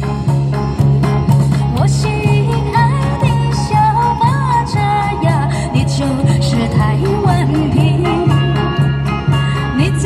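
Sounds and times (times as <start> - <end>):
pop backing track over speaker: 0.0 - 10.0.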